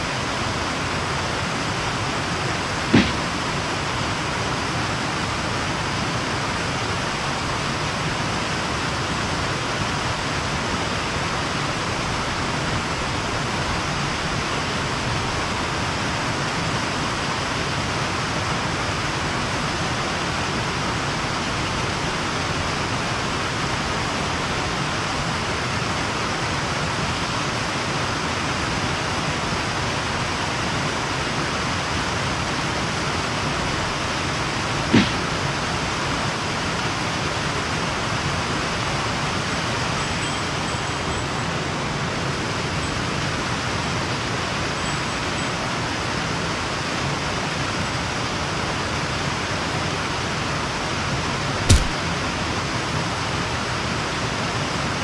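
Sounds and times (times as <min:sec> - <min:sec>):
short click: 0:51.7 - 0:52.0.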